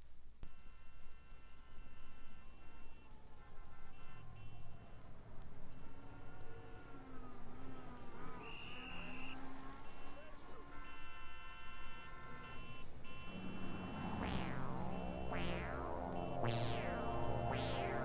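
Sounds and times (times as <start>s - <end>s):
traffic: 0.5s - 18.0s
held wavering tones: 13.3s - 18.0s
synthesizer sweeping tones: 13.3s - 18.0s.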